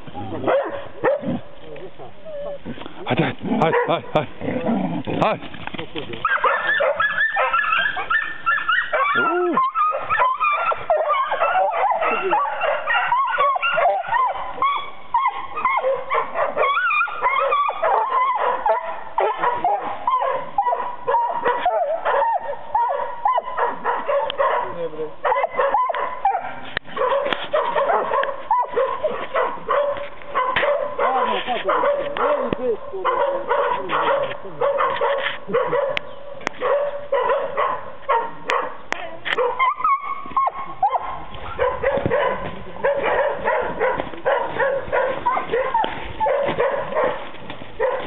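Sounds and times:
dogs yelping and barking: 0.0 - 5.0, 6.2 - 48.0.

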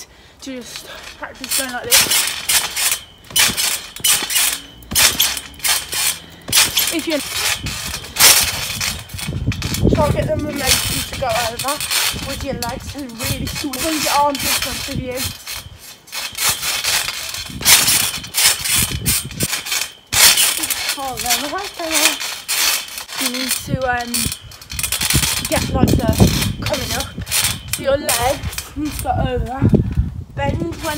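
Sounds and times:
trampoline springs creaking: 0.0 - 30.9.

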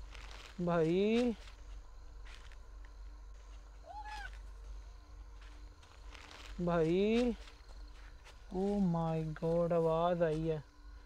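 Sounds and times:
low steady hum: 0.0 - 11.0
faint cat-like call: 3.8 - 4.4.

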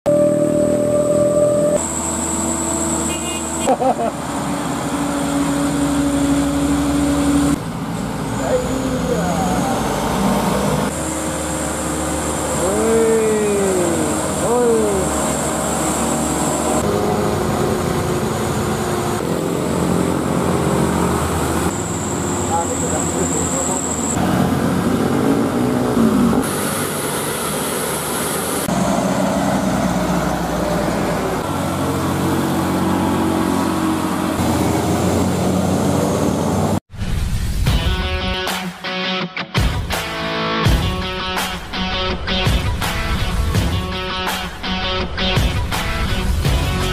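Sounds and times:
short rising and falling tones: 0.1 - 3.7
diesel truck engines straining: 0.1 - 36.8.

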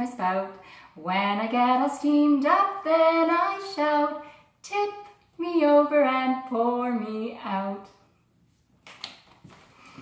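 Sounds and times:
faint breathing: 0.6 - 1.0.

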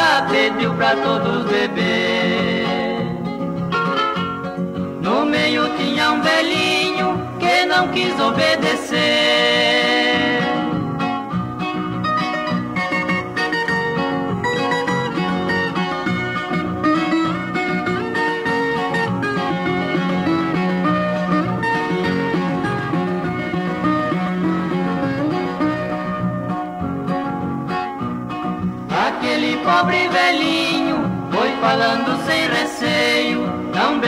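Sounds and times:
plucked acoustic strings melody: 0.0 - 34.0.

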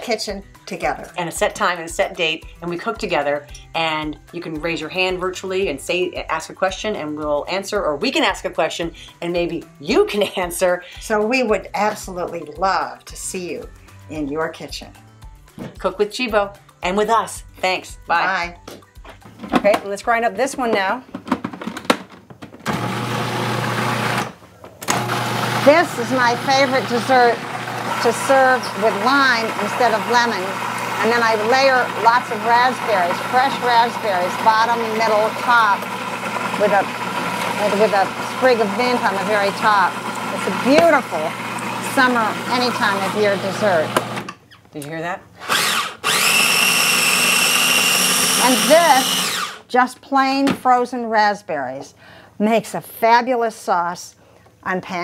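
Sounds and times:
food processor motor humming: 22.7 - 44.3, 45.4 - 49.7.

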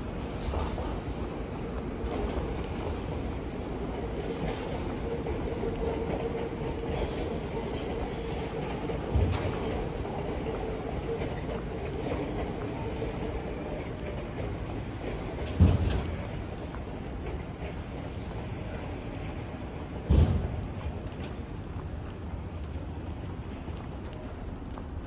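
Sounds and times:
train whine and rumble: 0.0 - 25.0.

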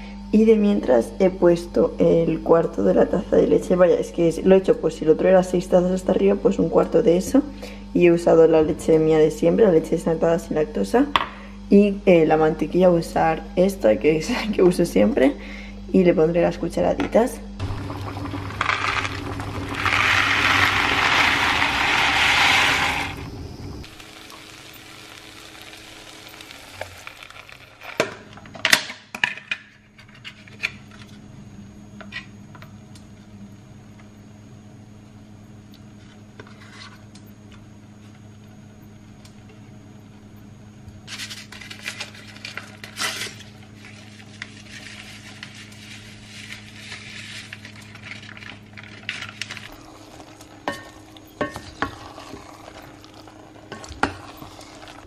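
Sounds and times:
steady low hum: 0.0 - 55.0
scraping and stirring in pot: 17.8 - 23.3, 41.1 - 55.0.

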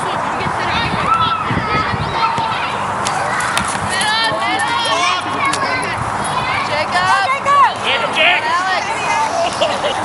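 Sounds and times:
players and spectators shouting: 0.7 - 10.0.

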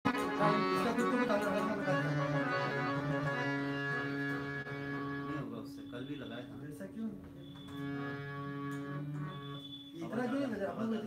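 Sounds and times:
harmonium playing chords: 0.0 - 11.0.

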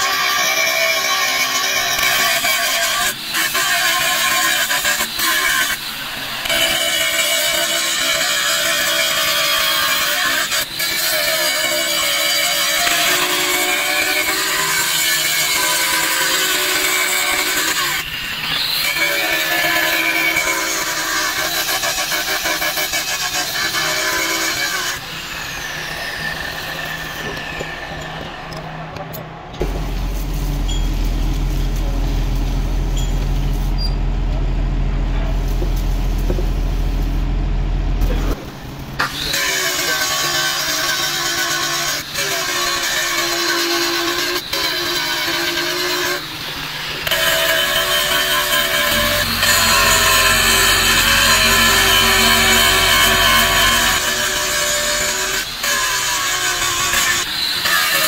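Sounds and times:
angle grinder cutting metal: 0.0 - 28.7, 39.0 - 58.0
steady low hum: 29.3 - 39.0, 48.6 - 54.7
grinder spinning down whine: 47.0 - 55.7.

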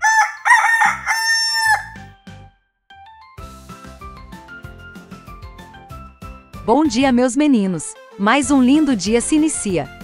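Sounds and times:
rooster crowing: 0.0 - 2.1.

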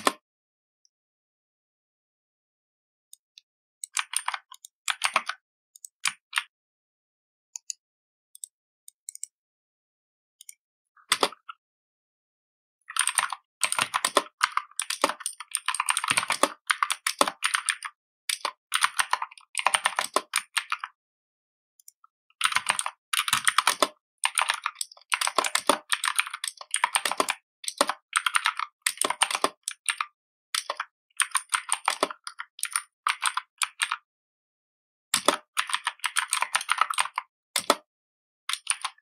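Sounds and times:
computer keyboard typing: 3.8 - 6.5, 11.1 - 11.4, 12.9 - 20.9, 21.8 - 34.0, 35.2 - 37.9, 38.5 - 39.0.

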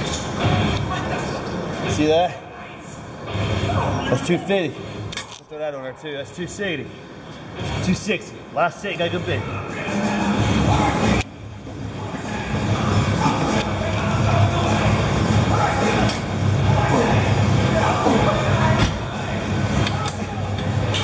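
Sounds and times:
indistinct voices: 0.0 - 21.0
steady low hum: 0.0 - 21.0
background music: 7.5 - 21.0.

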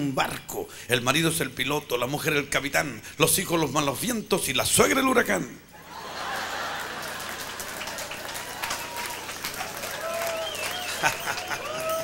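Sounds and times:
laughter: 5.8 - 8.1, 10.8 - 12.0
congregation applauding: 6.0 - 12.0.

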